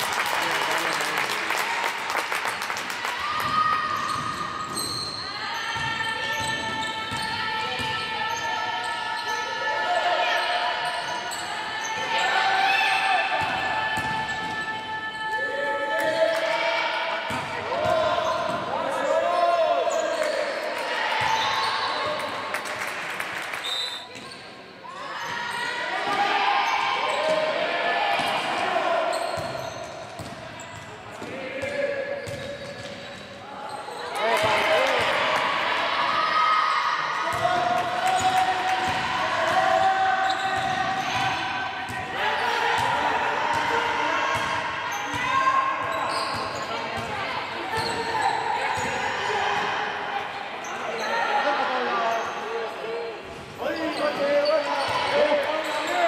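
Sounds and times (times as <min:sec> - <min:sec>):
basketball bouncing on court: 0:29.2 - 0:33.2, 0:37.3 - 0:42.1.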